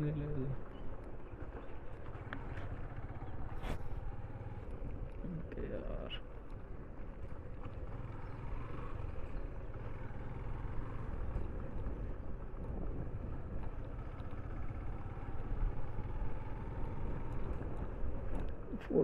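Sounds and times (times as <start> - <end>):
motorcycle engine rumbling: 0.0 - 19.0.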